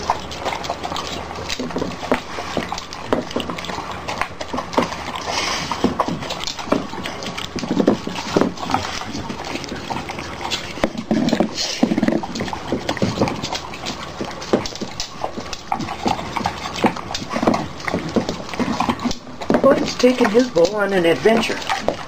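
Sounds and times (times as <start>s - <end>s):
dogs chewing and licking: 0.0s - 22.0s.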